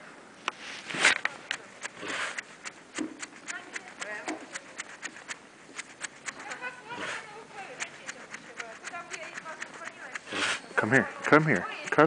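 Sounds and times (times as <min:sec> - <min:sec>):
footsteps crunching on snow: 0:00.5 - 0:12.0.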